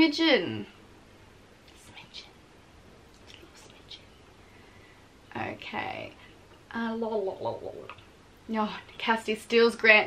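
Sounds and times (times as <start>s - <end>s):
soft hissing: 1.4s - 9.6s
woman whispering: 1.7s - 2.4s, 3.2s - 4.2s.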